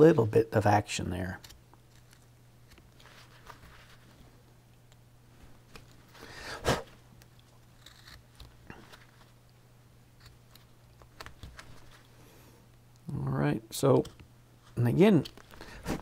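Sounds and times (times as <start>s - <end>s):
knife carving wood: 1.3s - 3.7s, 6.7s - 9.4s, 10.1s - 12.0s, 13.9s - 16.0s.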